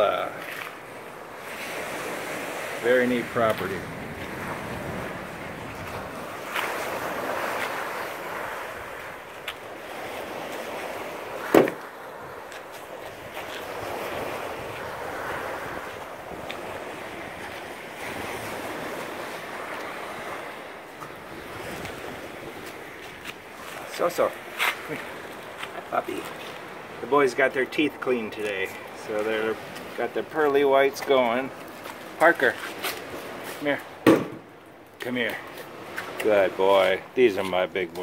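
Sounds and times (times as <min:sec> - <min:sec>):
small waves breaking on beach: 0:00.0 - 0:38.0
wind on microphone: 0:03.4 - 0:23.8.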